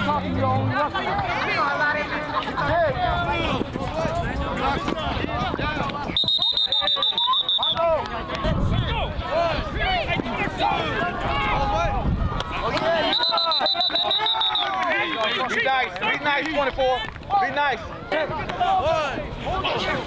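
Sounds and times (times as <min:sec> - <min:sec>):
high-pitched whistle blasts: 0:06.2 - 0:07.8, 0:13.0 - 0:14.8
people shouting: 0:06.4 - 0:16.2.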